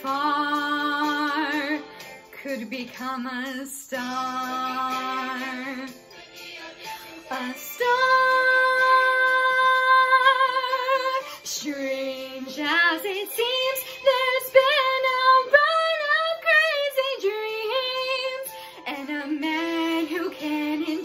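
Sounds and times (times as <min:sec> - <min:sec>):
woman singing with vibrato: 0:00.0 - 0:21.0.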